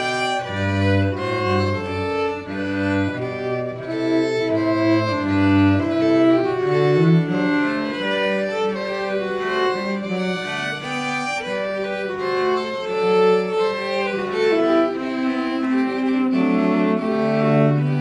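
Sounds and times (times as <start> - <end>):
bowed violin melody: 0.0 - 18.0
cello line: 0.0 - 18.0.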